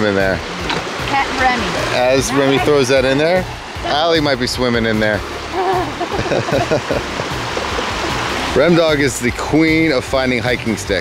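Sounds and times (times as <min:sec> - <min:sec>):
creek running over rocks: 0:00.0 - 0:11.0.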